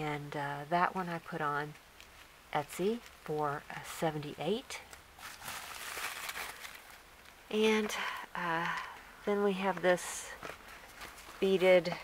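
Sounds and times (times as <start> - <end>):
bubble wrap crinkling: 4.8 - 7.5, 9.7 - 12.0.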